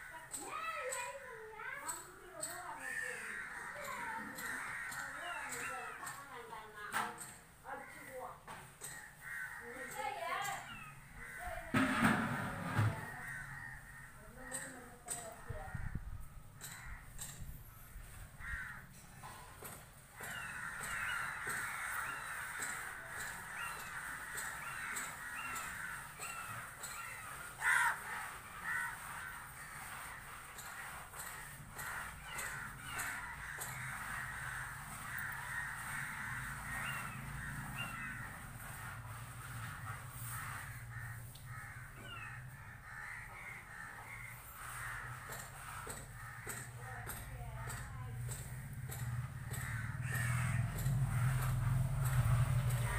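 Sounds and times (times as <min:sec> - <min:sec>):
crows cawing: 0:00.0 - 0:01.4, 0:02.3 - 0:06.5, 0:07.2 - 0:52.9.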